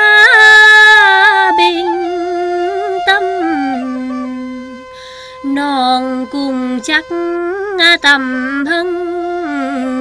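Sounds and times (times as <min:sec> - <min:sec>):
person singing a long held note: 0:00.0 - 0:10.0
sustained accompaniment tone: 0:00.0 - 0:10.0.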